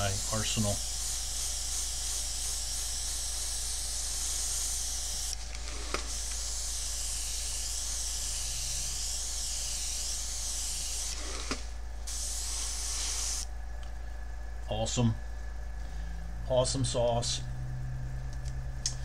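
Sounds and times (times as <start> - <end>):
airbrush spraying hiss: 0.0 - 13.5.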